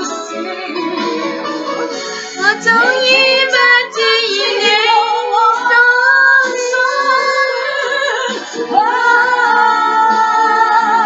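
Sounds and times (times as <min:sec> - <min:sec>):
woman singing with vibrato: 0:02.3 - 0:11.0.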